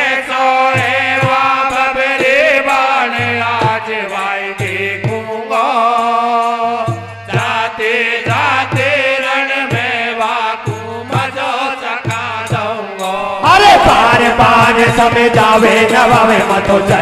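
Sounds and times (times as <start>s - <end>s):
devotional folk music: 0.0s - 17.0s.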